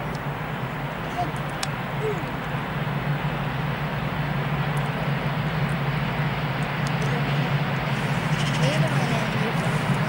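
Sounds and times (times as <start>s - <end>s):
electric locomotive hum and rumble: 0.0s - 10.0s.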